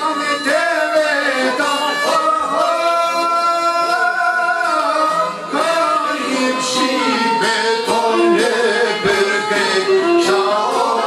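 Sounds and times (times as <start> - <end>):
man singing folk song: 0.0 - 11.0.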